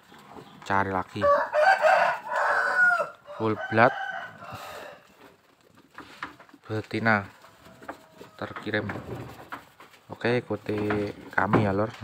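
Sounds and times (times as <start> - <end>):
rooster crowing: 1.2 - 5.1.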